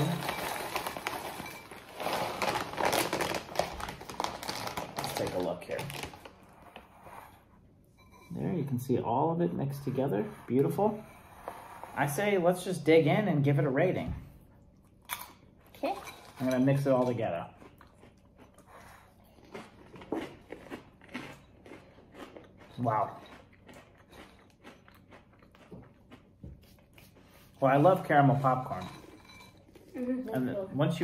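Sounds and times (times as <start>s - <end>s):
chewing crunchy snack: 17.0s - 27.3s.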